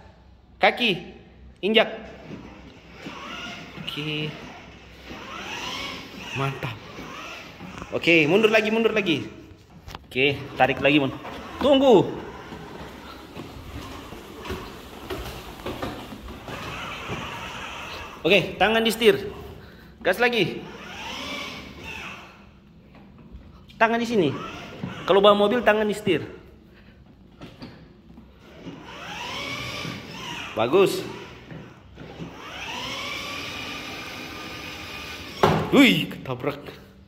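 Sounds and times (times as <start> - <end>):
plastic wheels rolling on tiles: 2.2 - 9.1, 9.8 - 19.1, 20.7 - 22.4, 28.4 - 35.6
toy car electric motors running: 2.2 - 9.1, 10.5 - 19.1, 20.6 - 22.5, 24.3 - 25.7, 28.4 - 35.7.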